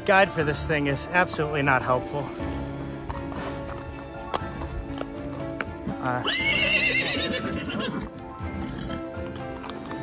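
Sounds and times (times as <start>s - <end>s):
background music with sustained notes: 0.0s - 10.0s
horse hooves clopping: 0.1s - 10.0s.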